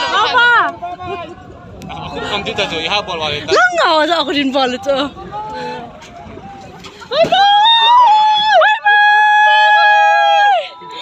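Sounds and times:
low rumble of moving vehicle: 0.0s - 11.0s.

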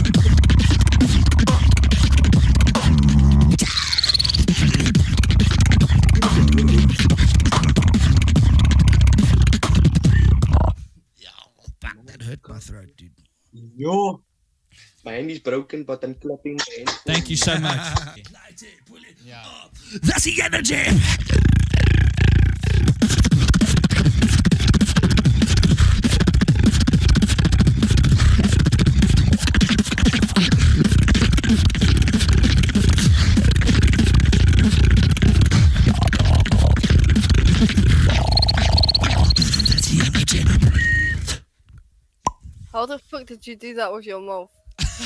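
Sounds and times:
beatboxing kick and bass: 0.0s - 10.8s, 16.6s - 18.4s, 20.1s - 41.5s.

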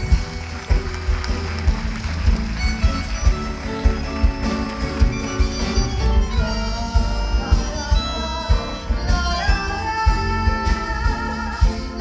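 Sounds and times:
tango ensemble with bandoneon: 0.0s - 12.0s.

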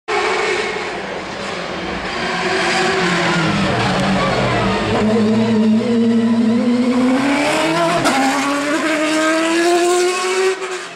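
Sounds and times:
race car engine at high revs: 0.1s - 10.9s.

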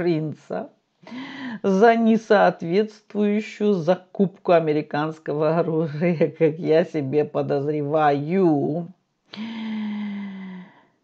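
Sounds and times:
woman humming: 9.4s - 10.7s.

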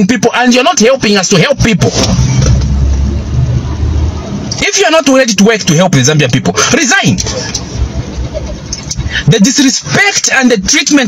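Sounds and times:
car cabin running noise: 1.8s - 4.8s.

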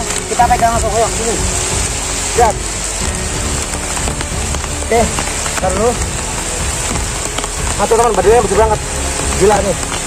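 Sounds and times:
man's voice: 0.0s - 1.5s, 2.3s - 2.7s, 7.7s - 9.8s
heavy rain falling: 0.0s - 10.0s.

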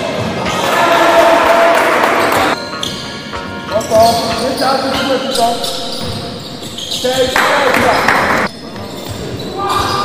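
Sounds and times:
background music: 0.0s - 7.5s.

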